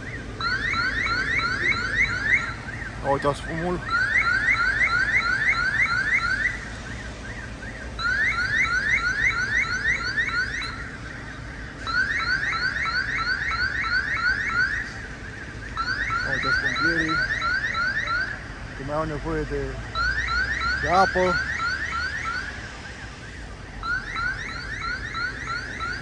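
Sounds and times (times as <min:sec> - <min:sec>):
security alarm rising chirps: 0:00.0 - 0:22.5, 0:23.8 - 0:26.0.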